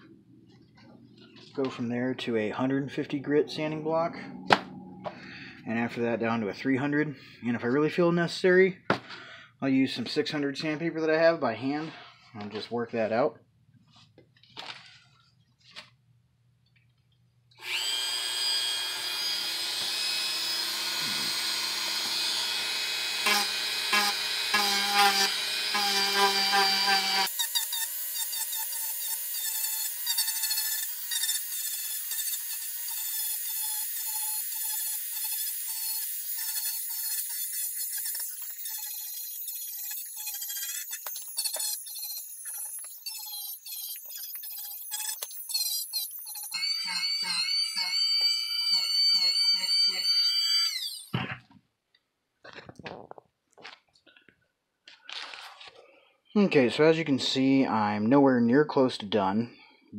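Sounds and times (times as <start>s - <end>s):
low hum: 0.0s - 7.4s
sanding bit grinding foam: 17.6s - 51.1s
rotary tool whining: 17.6s - 51.4s.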